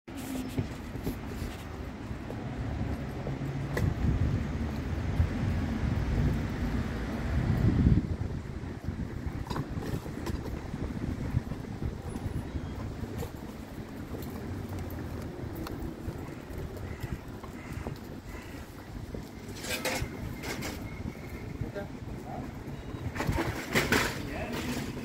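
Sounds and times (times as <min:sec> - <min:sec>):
faint street background: 0:00.1 - 0:25.0
wind buffeting microphone: 0:00.5 - 0:25.0.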